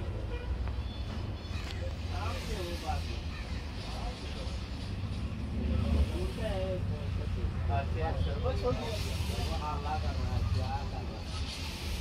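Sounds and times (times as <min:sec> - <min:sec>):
people talking: 0:01.5 - 0:04.8, 0:05.6 - 0:12.0.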